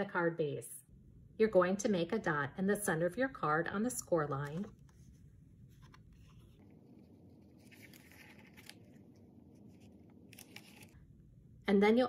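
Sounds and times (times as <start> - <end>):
cardstock rustling: 4.4 - 11.0.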